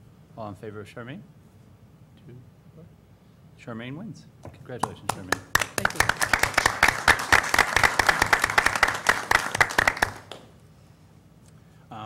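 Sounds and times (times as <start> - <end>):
people applauding: 4.8 - 10.6.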